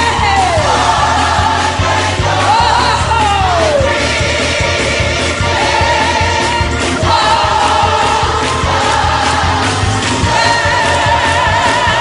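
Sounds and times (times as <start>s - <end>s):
gospel choir singing: 0.0s - 12.0s
low bass accompaniment: 0.0s - 12.0s.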